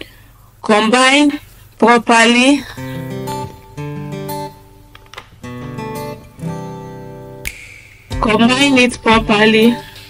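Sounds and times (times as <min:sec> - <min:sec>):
acoustic guitar playing chords: 0:02.8 - 0:10.0.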